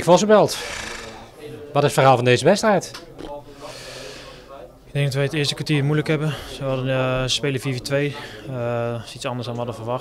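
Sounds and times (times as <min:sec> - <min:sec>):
faint voices: 0:00.5 - 0:02.1
man drawing a breath: 0:03.6 - 0:04.5.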